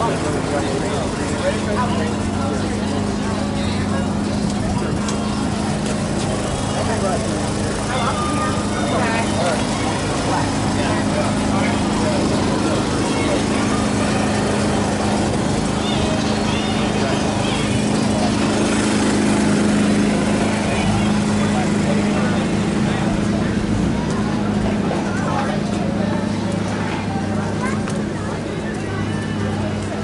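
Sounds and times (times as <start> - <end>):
low motor hum: 0.0 - 30.0
people talking: 0.0 - 30.0.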